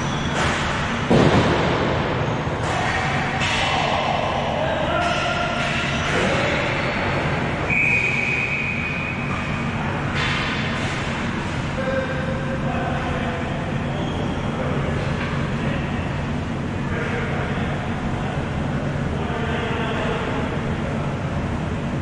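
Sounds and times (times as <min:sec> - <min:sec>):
rumbling drone in hall: 0:00.0 - 0:22.0.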